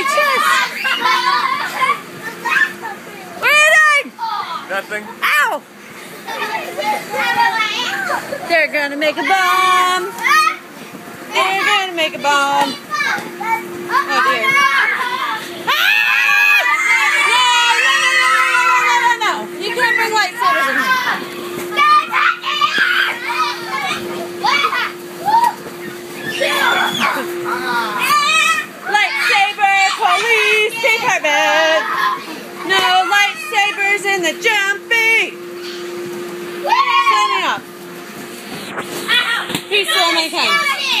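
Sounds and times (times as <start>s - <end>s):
children shrieking and shouting: 0.0s - 5.6s, 10.1s - 10.8s, 12.8s - 34.0s, 36.6s - 37.6s, 39.0s - 41.0s
faint hum: 0.0s - 41.0s.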